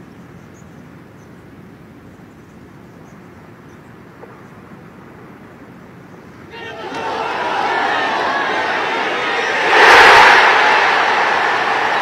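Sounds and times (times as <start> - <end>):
crowd cheering: 6.5 - 12.0.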